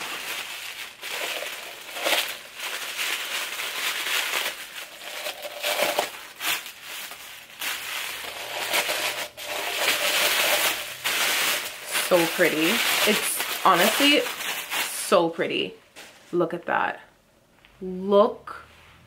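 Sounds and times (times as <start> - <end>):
paper wrapping crinkling: 0.0 - 16.2.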